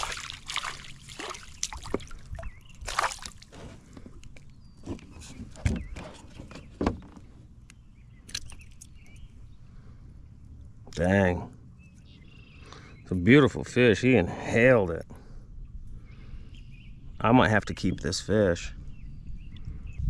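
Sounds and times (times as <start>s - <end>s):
fish splashing and thrashing: 0.0s - 6.4s.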